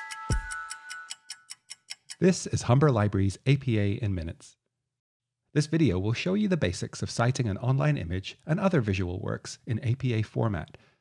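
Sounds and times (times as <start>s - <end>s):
music note tone: 0.0s - 1.4s
clock ticking: 0.0s - 2.7s.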